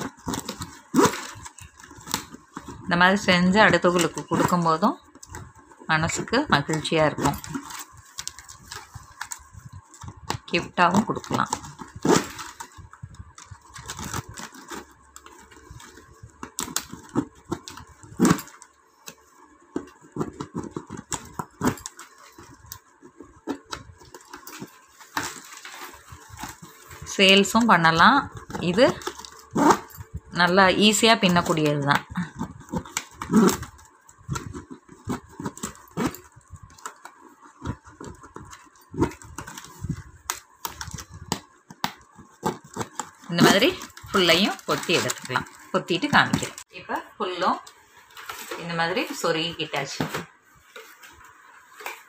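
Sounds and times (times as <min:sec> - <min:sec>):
plastic tape rustling and scraping: 0:00.0 - 0:52.0.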